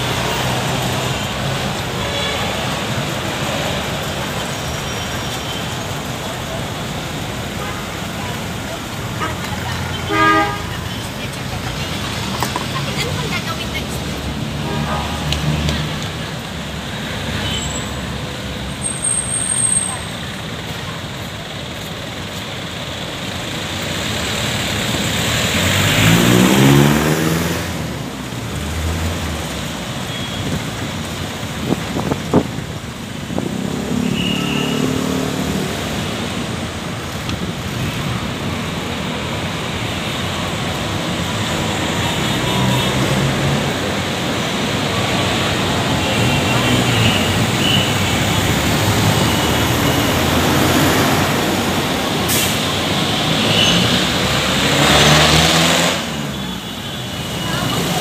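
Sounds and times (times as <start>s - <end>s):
city street traffic: 0.0s - 58.0s.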